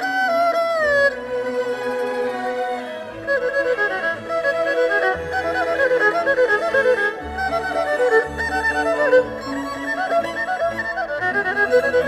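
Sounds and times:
erhu melody: 0.0s - 12.0s.

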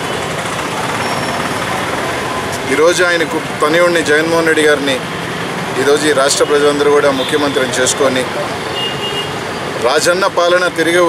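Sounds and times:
steady background noise: 0.0s - 11.0s
man speaking: 5.8s - 8.6s, 9.8s - 11.0s.

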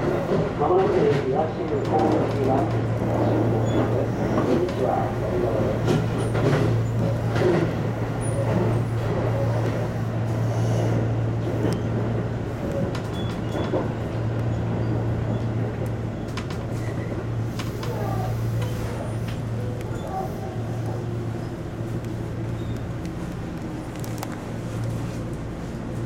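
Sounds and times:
electric train running on rails: 0.0s - 26.0s.

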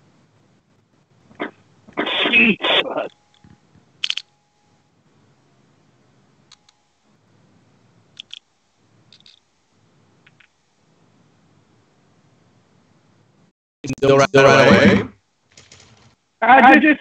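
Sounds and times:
faint low background noise: 0.0s - 17.0s
computer mouse clicks: 3.1s - 4.3s, 6.5s - 6.9s, 8.2s - 8.5s, 9.1s - 9.5s, 10.2s - 10.6s.

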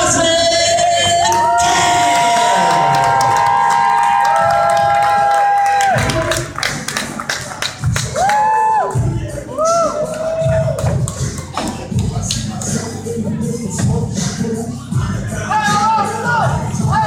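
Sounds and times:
crowd clapping and cheering: 1.1s - 13.0s
person singing over loudspeakers: 8.9s - 17.0s.

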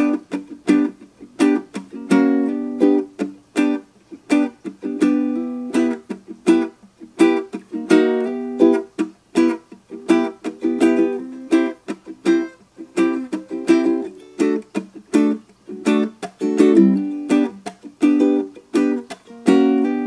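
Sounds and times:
ukulele strumming: 0.0s - 20.0s.

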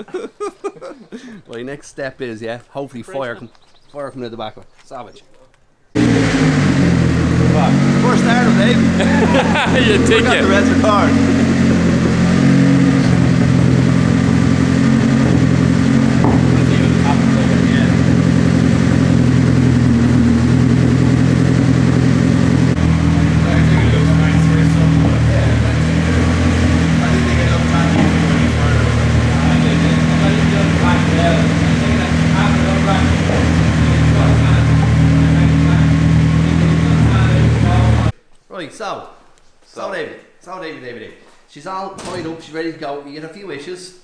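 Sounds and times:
turbocharged car engine running loudly: 6.0s - 38.1s.

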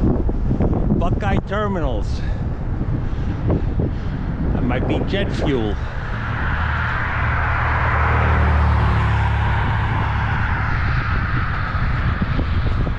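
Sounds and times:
vehicle passing on road: 2.4s - 12.9s.

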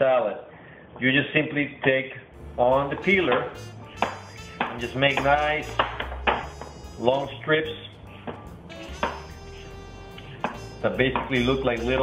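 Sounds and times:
faint background music: 2.2s - 12.0s.

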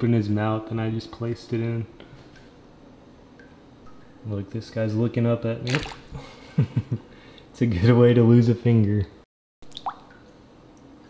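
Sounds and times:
small water plop: 5.6s - 6.2s, 9.6s - 10.9s.

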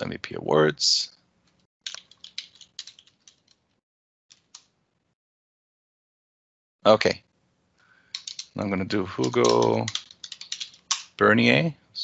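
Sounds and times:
computer keyboard typing: 1.8s - 3.6s, 8.2s - 11.1s.

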